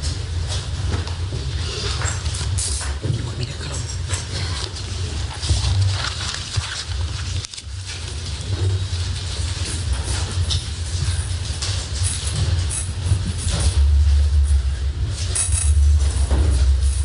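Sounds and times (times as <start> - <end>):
steady low rumble: 9.1 - 17.0.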